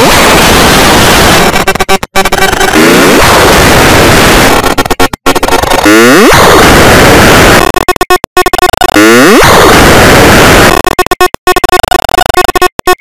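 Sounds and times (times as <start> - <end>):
glitchy falling sweep: 0.0 - 12.8
harsh distorted digital noise: 0.0 - 13.0.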